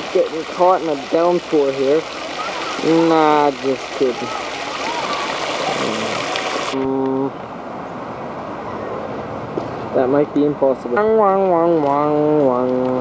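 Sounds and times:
fountain water splashing: 0.0 - 7.4, 9.7 - 13.0
outdoor background noise: 0.0 - 13.0.

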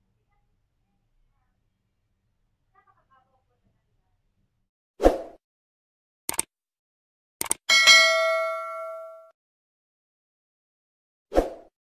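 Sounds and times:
bell ding sound effect: 7.7 - 9.3.

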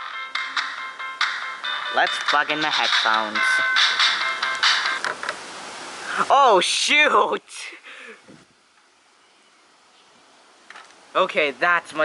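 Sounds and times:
song through small speaker: 0.0 - 5.0.

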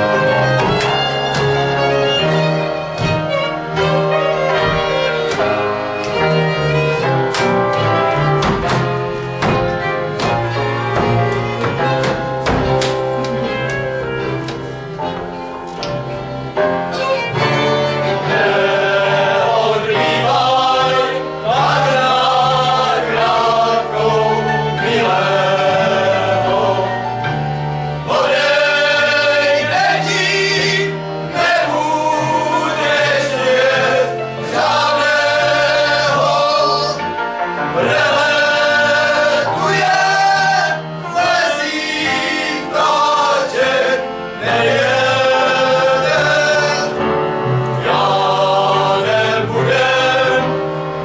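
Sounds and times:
men singing together: 18.1 - 27.4, 28.0 - 50.7.

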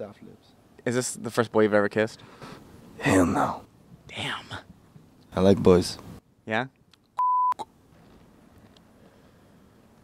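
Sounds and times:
censor bleep tone: 7.2 - 7.7.

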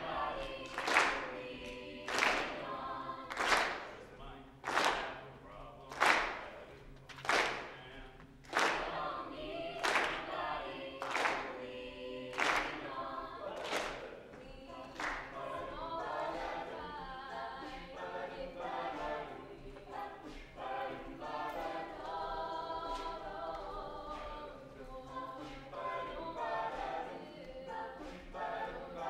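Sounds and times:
a cappella group singing: 0.0 - 5.5, 6.2 - 29.0.

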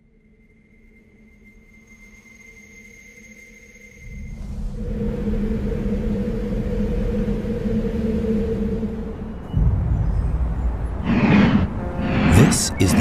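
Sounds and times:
low rumble: 9.6 - 13.0
steady hum: 10.9 - 13.0.

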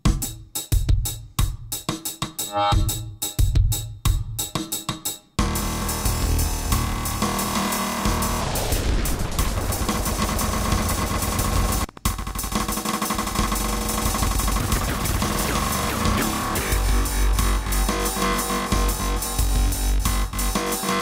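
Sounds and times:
drum machine beat with echoes: 0.0 - 21.0.

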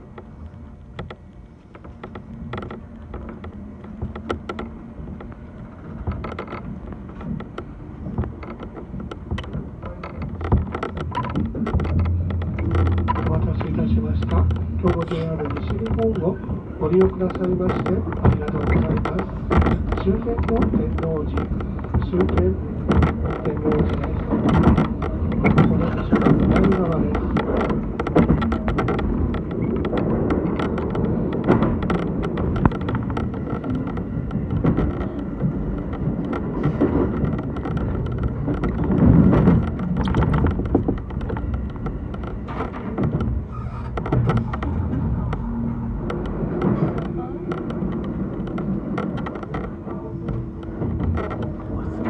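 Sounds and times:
clatter over rail joints: 0.0 - 52.0
train wheels rumbling on rail: 0.0 - 52.0.

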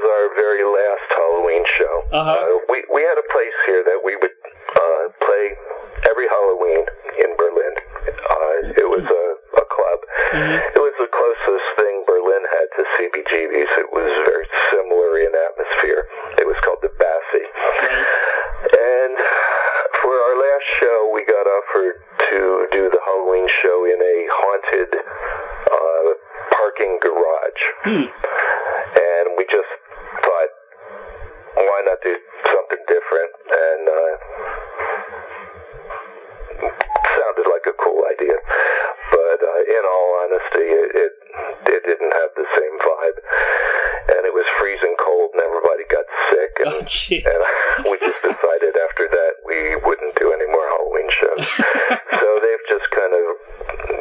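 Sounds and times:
man talking over telephone: 0.0 - 28.3, 31.6 - 34.2, 36.6 - 43.4, 44.1 - 54.0.

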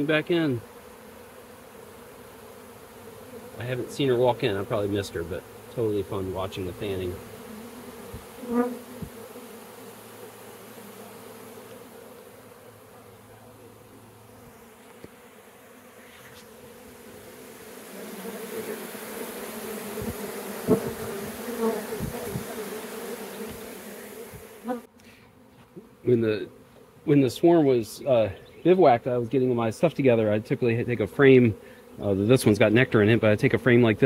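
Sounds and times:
bees buzzing: 0.0 - 34.0.

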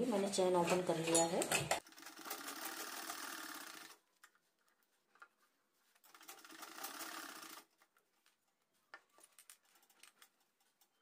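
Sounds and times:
sewing machine stitching: 1.7 - 4.0, 6.0 - 7.7.

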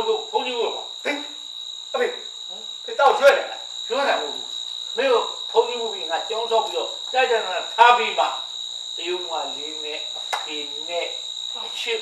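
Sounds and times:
men talking: 0.0 - 1.4, 2.0 - 2.3, 2.9 - 12.0
high-pitched whine: 0.0 - 12.0.

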